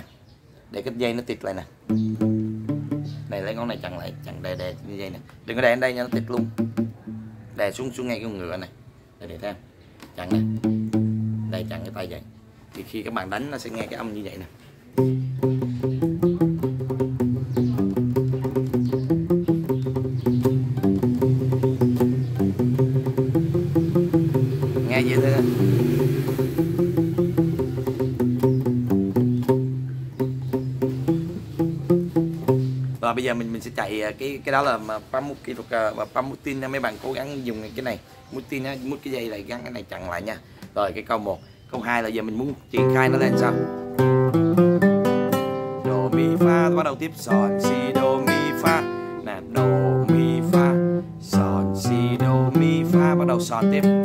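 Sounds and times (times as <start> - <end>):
palm-muted classical guitar: 1.8 - 8.0, 10.0 - 13.1, 13.7 - 35.7, 42.5 - 54.0.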